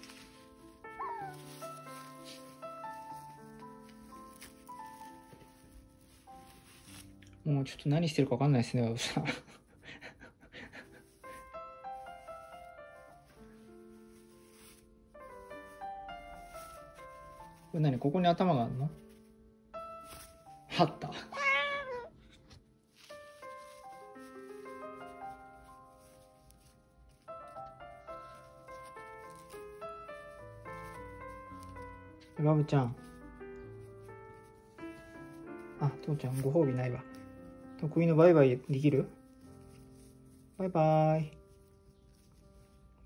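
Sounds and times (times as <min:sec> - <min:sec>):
background music: 0:00.0 - 0:43.0
cockatoo squeak: 0:01.0 - 0:01.4, 0:21.3 - 0:22.1
cockatoo whining call: 0:01.0 - 0:01.5.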